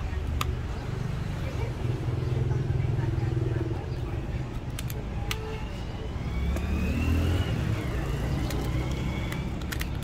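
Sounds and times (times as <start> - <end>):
low rumble of traffic: 0.0 - 10.0
vehicle engine revving: 6.1 - 9.8.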